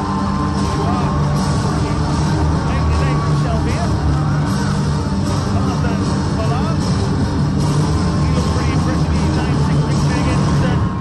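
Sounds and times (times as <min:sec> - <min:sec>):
crowd noise in a hall: 0:00.0 - 0:11.0
loud music with heavy bass: 0:00.0 - 0:11.0.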